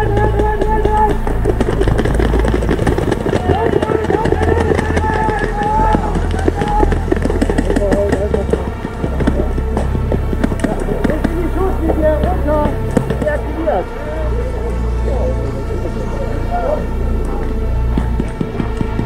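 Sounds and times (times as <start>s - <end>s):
indistinct voices: 0.0s - 19.0s
music with deep bass: 0.0s - 19.0s
running footfalls: 0.0s - 19.0s.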